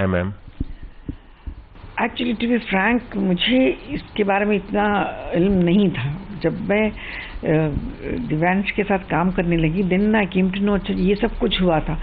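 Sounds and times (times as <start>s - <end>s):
man asking a question: 0.0s - 0.4s
microphone handling thumps: 0.3s - 2.1s.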